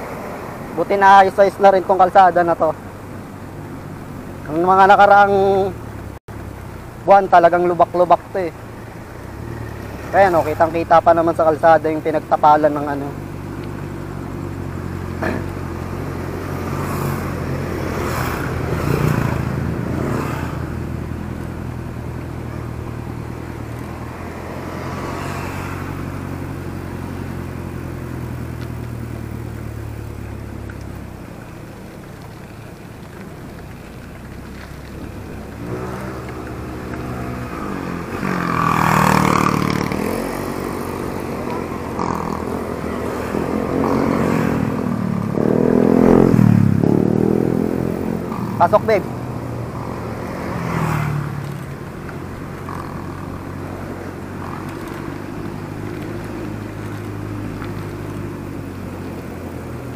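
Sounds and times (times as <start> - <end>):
engine hum: 0.0 - 59.9
vehicles passing close by: 0.0 - 59.9.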